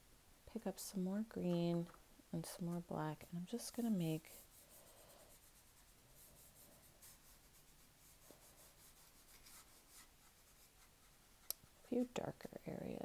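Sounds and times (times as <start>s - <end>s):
paintbrush dabbing on paper: 0.8s - 13.0s.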